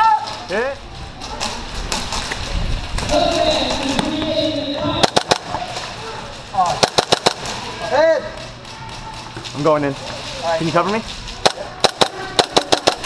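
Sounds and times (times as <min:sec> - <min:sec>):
people shouting: 0:00.0 - 0:00.4, 0:03.0 - 0:06.8
airsoft gun shots: 0:05.0 - 0:05.6, 0:06.7 - 0:07.6, 0:11.4 - 0:13.0.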